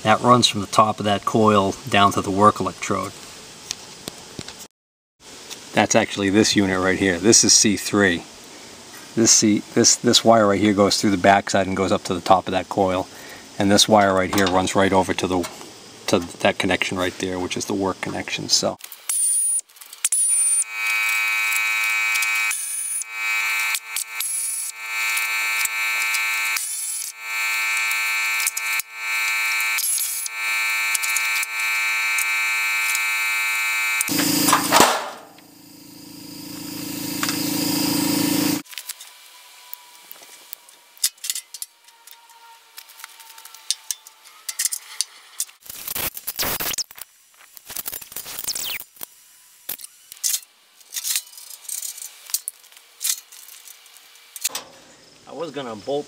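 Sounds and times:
pneumatic wrench whine: 18.8s - 44.8s, 47.7s - 52.0s
sharp burst: 22.4s - 38.6s, 45.6s - 46.9s
low swelling tone: 35.3s - 38.6s.

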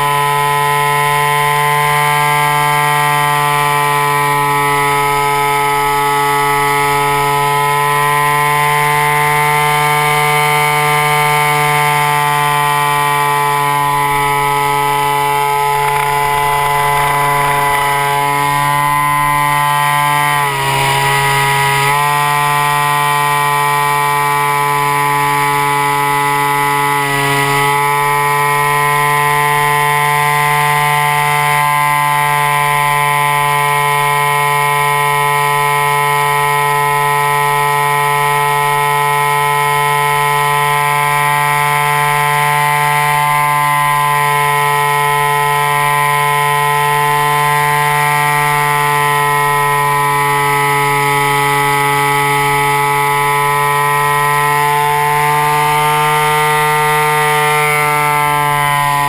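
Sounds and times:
model plane motor whining: 0.0s - 59.0s.

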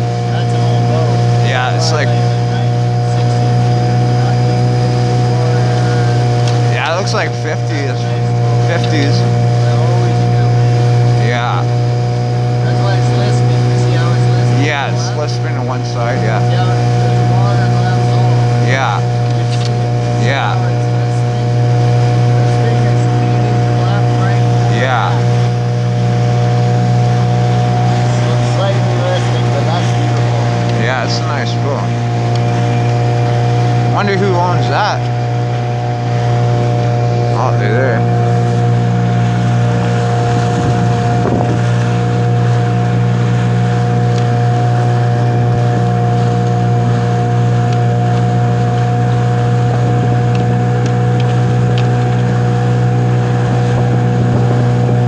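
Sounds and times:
outboard motor running: 0.0s - 55.0s.

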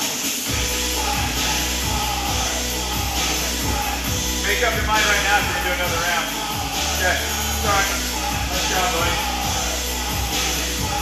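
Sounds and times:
music with a steady beat: 0.0s - 11.0s
deep bass line: 0.5s - 11.0s.

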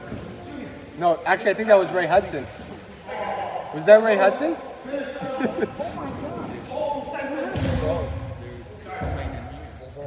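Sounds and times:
ball thumping against walls: 7.5s - 8.1s.

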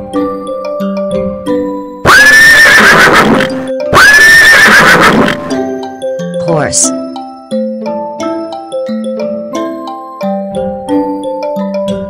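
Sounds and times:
horse neighing: 2.1s - 5.6s.

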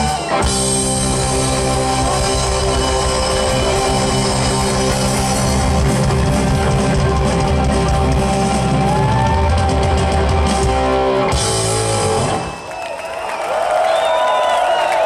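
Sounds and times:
live rock band playing: 0.0s - 12.7s
crowd cheering and shouting: 0.0s - 15.0s.

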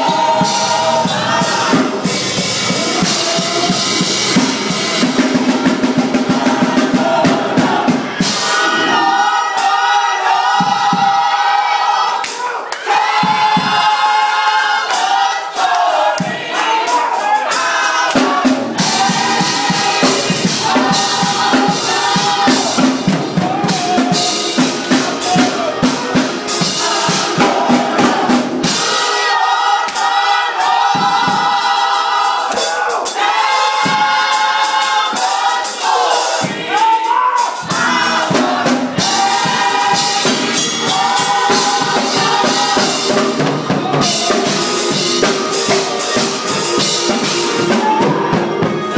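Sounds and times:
drum hits: 0.0s - 9.7s, 18.0s - 29.0s, 32.5s - 36.9s, 37.6s - 48.9s
gospel choir singing: 0.0s - 48.9s.

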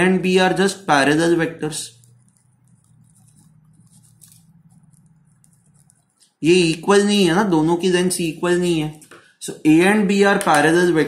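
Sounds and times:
pen scratching on paper: 2.1s - 6.2s.

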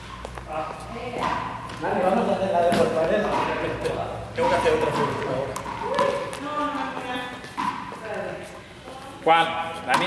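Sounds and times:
men talking: 1.8s - 5.7s.

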